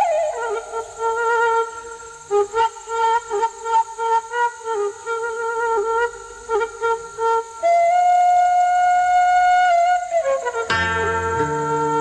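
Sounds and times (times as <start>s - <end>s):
flute melody: 0.0s - 12.0s.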